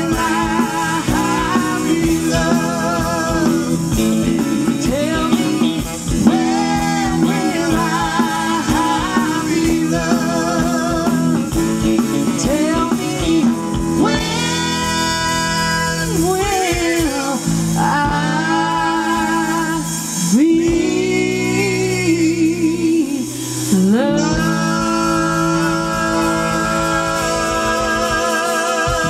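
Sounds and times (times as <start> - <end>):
blues-rock band playing: 0.0 - 29.0
woman singing with vibrato: 0.0 - 29.0.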